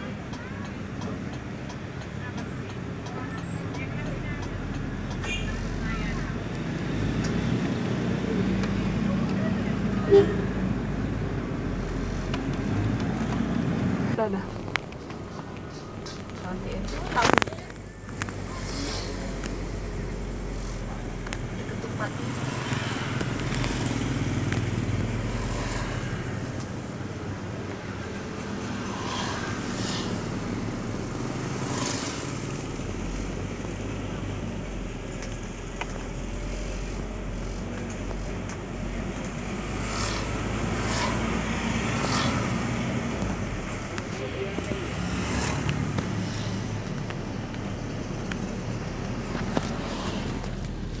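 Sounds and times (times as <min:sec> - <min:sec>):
passing traffic: 0:00.0 - 0:51.0
road and wind noise: 0:00.0 - 0:51.0
vehicle engine hum: 0:00.0 - 0:51.0.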